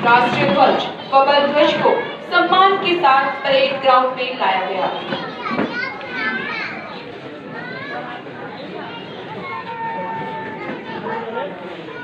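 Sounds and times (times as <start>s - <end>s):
children's voices: 0.0s - 12.0s
crowd chattering: 0.0s - 12.0s.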